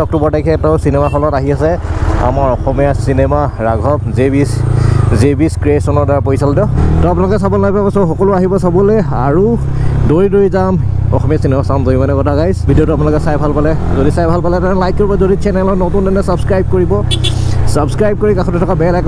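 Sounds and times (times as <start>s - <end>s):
man talking: 0.0s - 19.0s
motorcycle engine humming: 0.0s - 19.0s.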